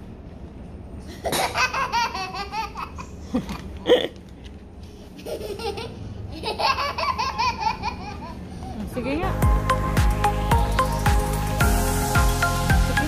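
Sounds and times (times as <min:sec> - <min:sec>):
child giggling: 0:01.1 - 0:04.2, 0:05.1 - 0:08.5.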